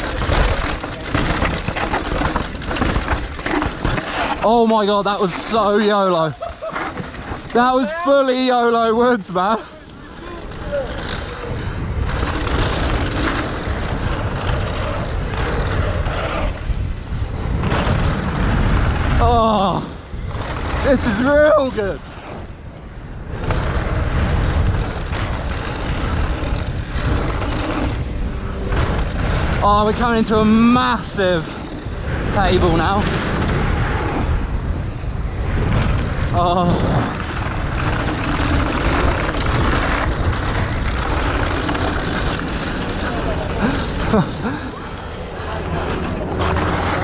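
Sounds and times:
bike tyres rolling on dirt: 0.0s - 47.0s
wind buffeting microphone: 0.0s - 47.0s
person laughing: 6.1s - 7.1s, 43.4s - 45.0s.

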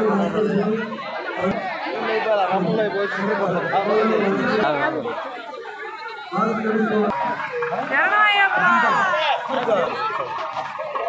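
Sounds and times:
crowd talking and calling out: 0.0s - 11.0s.

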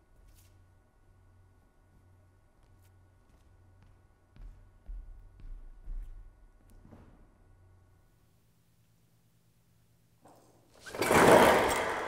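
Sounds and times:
projection screen rattling unrolling: 10.7s - 12.0s.

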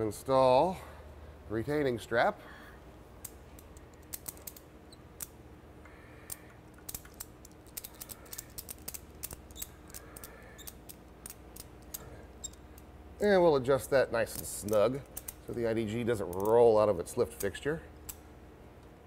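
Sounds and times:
faint steady hum: 0.0s - 19.0s
strap buckle clicking: 3.2s - 4.6s, 6.3s - 12.9s, 14.4s - 15.5s.

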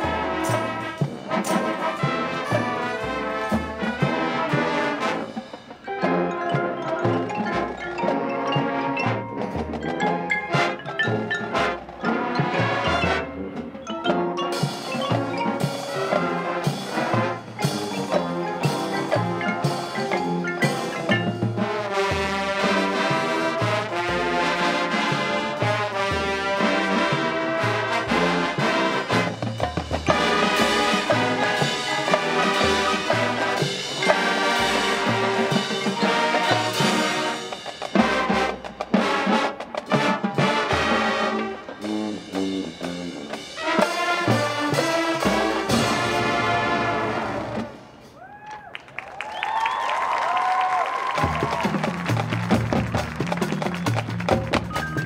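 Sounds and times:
marching band playing: 0.0s - 55.0s
ringing mallet tones: 5.8s - 16.5s, 17.5s - 21.7s.

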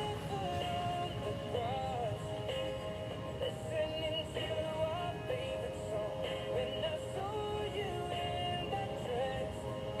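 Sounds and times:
pop song over radio: 0.0s - 10.0s.

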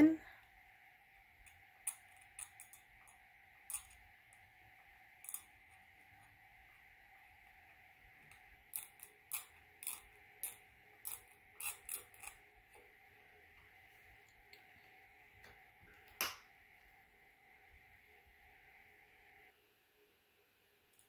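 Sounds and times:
faint steady hum: 0.0s - 21.0s
metal blade scraping plastic teeth: 8.7s - 12.4s.

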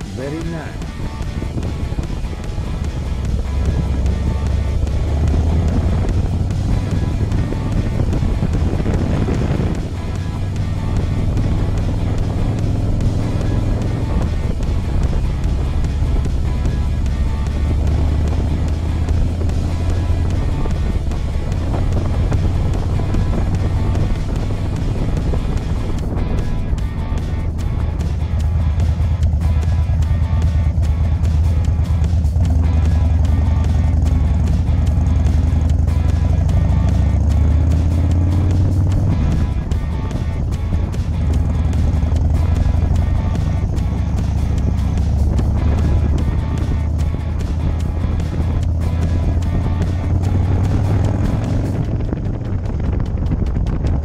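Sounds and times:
motorcycle engine cruising: 0.0s - 54.0s
music playing: 0.0s - 54.0s
wind noise: 0.0s - 54.0s.

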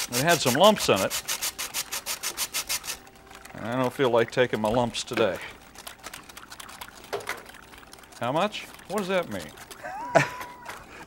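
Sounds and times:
whisk beating liquid in glass bowl: 0.0s - 3.0s, 3.6s - 10.0s.

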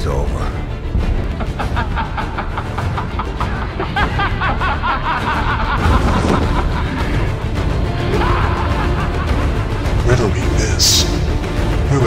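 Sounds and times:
dark trailer score: 0.0s - 12.0s.

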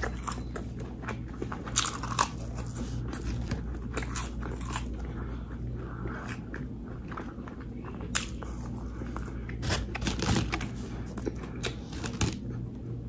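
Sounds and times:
crunching bites and chewing: 0.0s - 12.9s
steady low hum: 0.0s - 13.0s.

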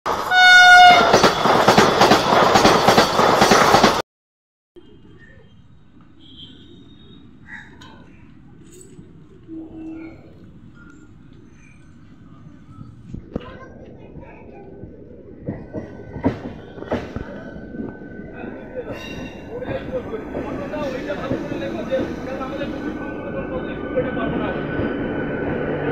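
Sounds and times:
train wheels clattering over rails: 0.1s - 4.0s, 15.4s - 25.9s
wheels knocking on rail joints: 0.1s - 4.0s, 15.4s - 18.0s
train horn blast: 0.3s - 1.1s.

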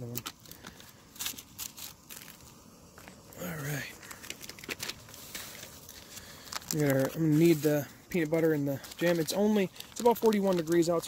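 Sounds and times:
plastic wrappers crinkling: 0.0s - 2.5s, 4.0s - 11.0s.

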